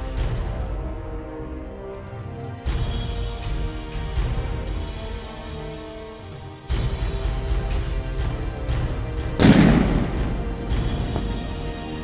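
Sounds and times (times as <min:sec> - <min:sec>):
background music: 0:00.0 - 0:12.0
rifle shot: 0:09.4 - 0:11.4.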